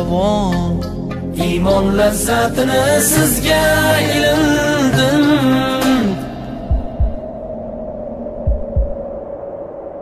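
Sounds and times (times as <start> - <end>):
drone-like hum: 0.0 - 10.0
heavy low thumps: 6.5 - 9.3.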